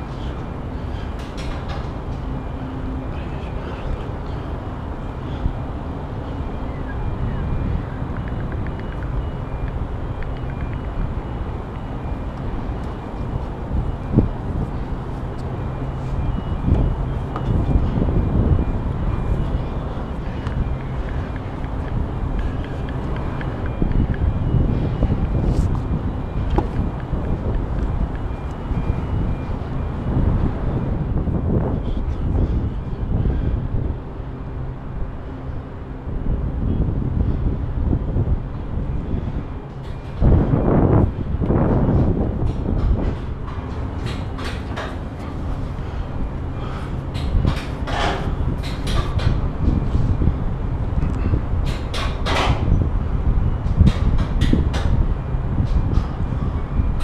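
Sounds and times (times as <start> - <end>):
distant city traffic: 0.0 - 57.0
low hum: 0.0 - 57.0
wind rumble: 0.0 - 57.0.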